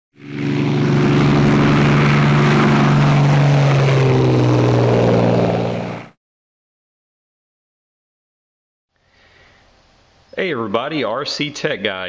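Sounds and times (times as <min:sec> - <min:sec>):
engine-like drone: 0:00.1 - 0:06.2.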